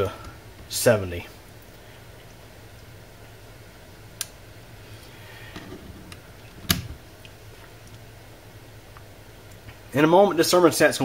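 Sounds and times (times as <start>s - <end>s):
blower fan humming: 0.0s - 11.0s.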